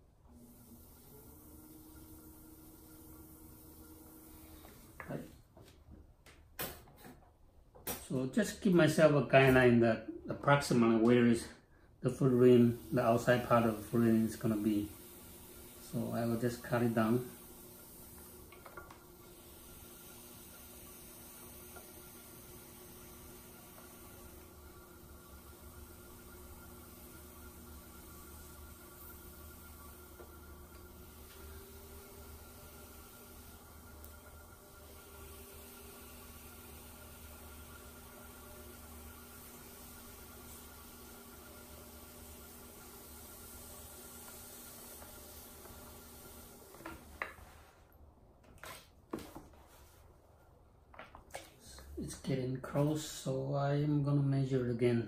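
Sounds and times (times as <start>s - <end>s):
pottery wheel motor hum: 0.0s - 6.8s, 7.9s - 50.0s.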